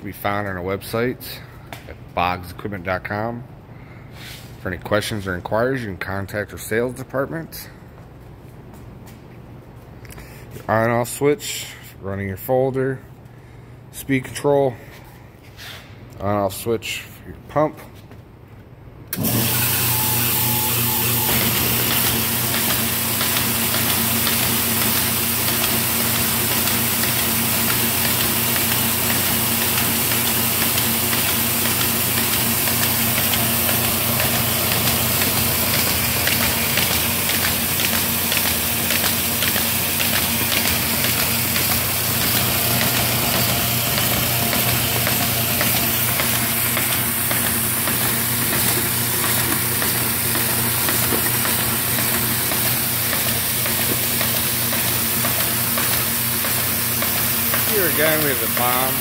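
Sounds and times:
paper folder machine hum: 19.1s - 59.0s
fast ticking of paper feeding: 20.9s - 59.0s.

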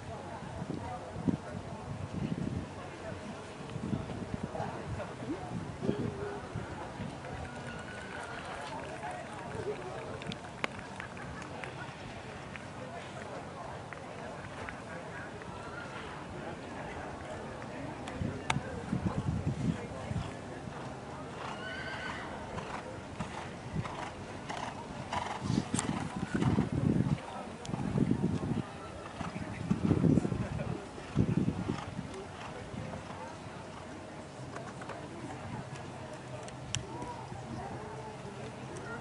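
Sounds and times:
faint background voices: 0.0s - 39.0s
horse whinnying: 21.4s - 22.3s.

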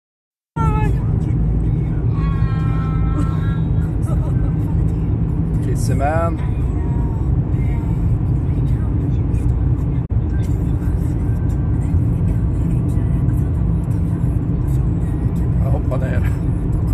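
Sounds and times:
car road and engine noise: 0.6s - 16.9s.

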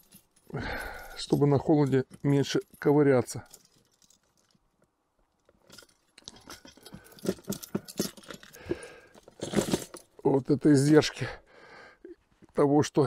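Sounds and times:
fishing tackle clinking: 5.4s - 10.3s.

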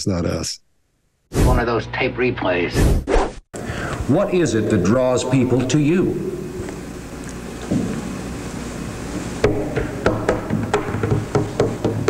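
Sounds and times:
low steady hum: 3.6s - 11.2s
man moving about: 6.0s - 9.4s
sharp knocks and clicks: 9.4s - 12.0s.

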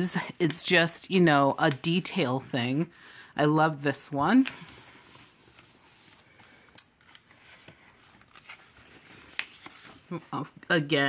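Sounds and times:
paper pages rustling: 4.3s - 10.7s.

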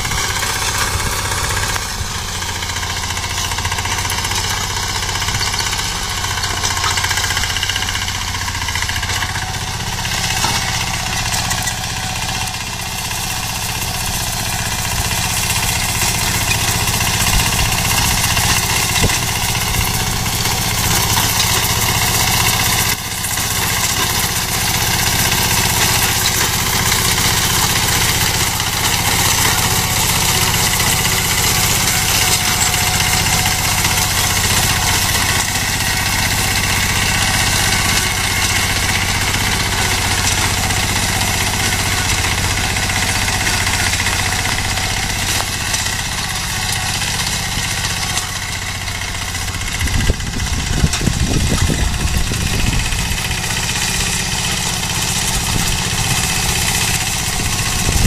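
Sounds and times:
small engine running: 0.0s - 58.0s.

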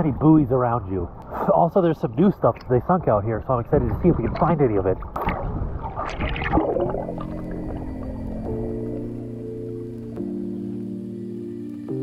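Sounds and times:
water sloshing and splashing: 3.7s - 9.7s
soft background music: 6.5s - 12.0s.

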